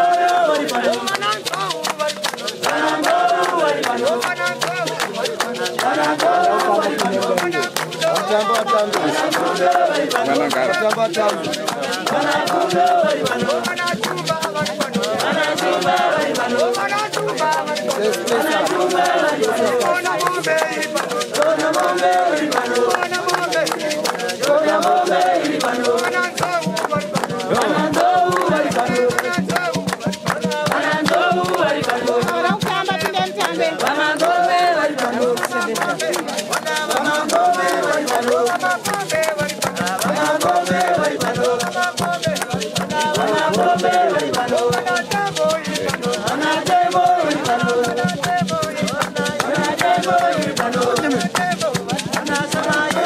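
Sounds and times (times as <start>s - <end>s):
crowd singing: 0.0s - 53.0s
rhythmic hand clapping: 0.0s - 53.0s
shaker rattling: 0.0s - 53.0s.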